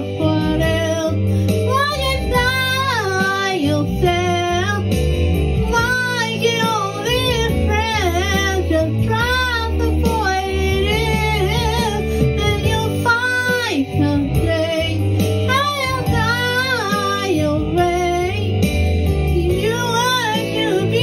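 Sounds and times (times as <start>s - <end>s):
instrumental backing track: 0.0s - 21.0s
woman singing pop ballad: 0.0s - 21.0s.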